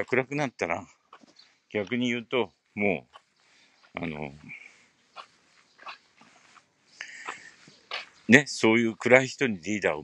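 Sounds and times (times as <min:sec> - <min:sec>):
faint animal calls: 0:03.0 - 0:08.4.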